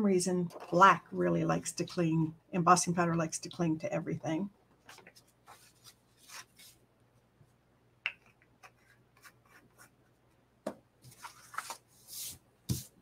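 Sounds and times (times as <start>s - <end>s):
paper rustling: 4.9s - 6.8s, 11.0s - 12.9s.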